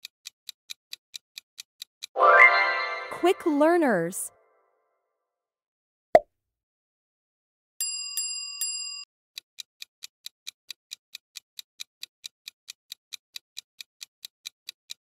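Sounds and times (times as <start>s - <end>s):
countdown timer ticking: 2.1s - 4.2s
chime struck: 2.2s - 3.6s.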